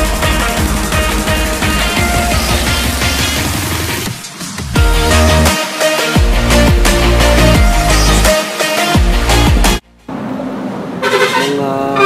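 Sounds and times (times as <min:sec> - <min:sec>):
man's drawn-out vowel: 0:11.1 - 0:12.0.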